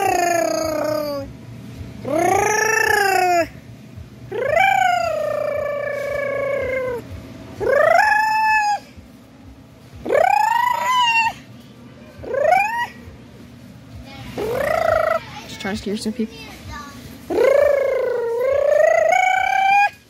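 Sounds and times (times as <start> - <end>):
child wailing: 0.0 - 1.3, 2.0 - 3.6, 4.3 - 7.0, 7.6 - 8.9, 10.0 - 11.4, 12.2 - 13.0, 14.4 - 15.7, 17.3 - 20.0.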